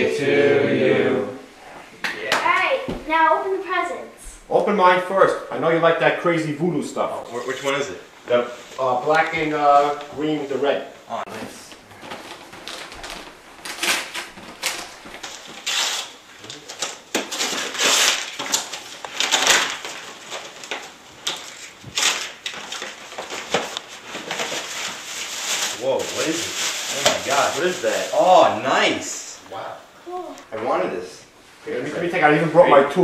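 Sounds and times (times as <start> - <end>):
tissue paper rustling: 11.8 - 29.1
wrapping paper tearing: 12.0 - 28.7.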